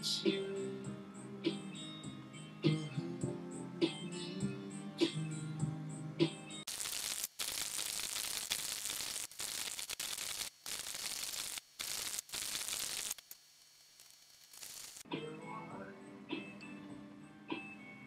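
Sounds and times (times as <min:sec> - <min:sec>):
loud static-like hiss: 0:06.7 - 0:15.0.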